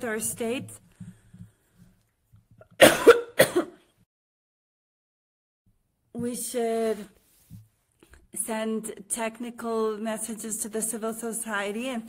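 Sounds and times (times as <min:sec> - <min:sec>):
woman coughing: 0:02.8 - 0:03.8.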